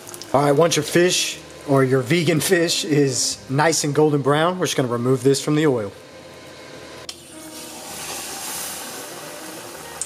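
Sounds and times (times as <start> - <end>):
food deep-frying in hot oil: 0.0 - 1.7, 7.4 - 10.0.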